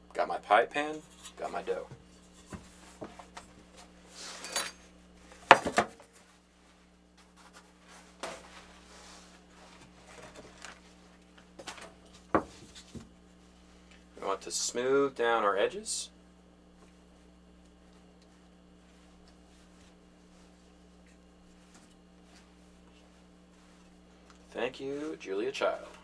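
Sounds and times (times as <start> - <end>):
baking mat rustling: 1.1 - 4.5, 5.2 - 13.9, 16.8 - 26.0.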